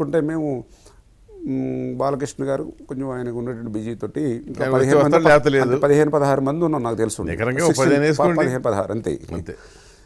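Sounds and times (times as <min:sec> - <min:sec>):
man speaking: 0:01.3 - 0:09.6.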